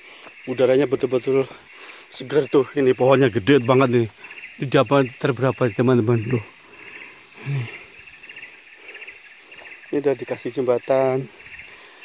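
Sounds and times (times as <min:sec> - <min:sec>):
insects chorus pulsing: 0:00.0 - 0:12.0
person grunting: 0:07.4 - 0:07.8.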